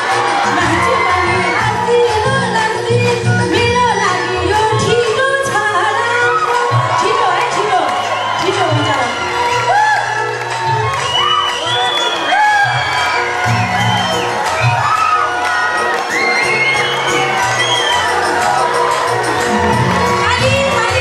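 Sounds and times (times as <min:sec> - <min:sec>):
audience cheering and whooping: 0:00.0 - 0:02.4, 0:05.9 - 0:21.0
music with repeating bass line: 0:00.0 - 0:21.0.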